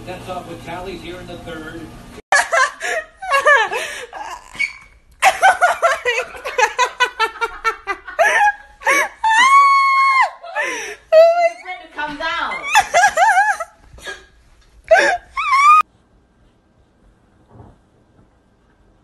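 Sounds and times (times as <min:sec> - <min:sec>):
people laughing hard: 0:02.3 - 0:04.6, 0:05.2 - 0:11.4, 0:12.6 - 0:13.8.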